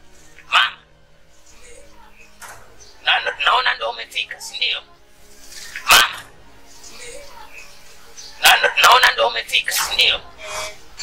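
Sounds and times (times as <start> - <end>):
dog barking: 5.8 - 6.2.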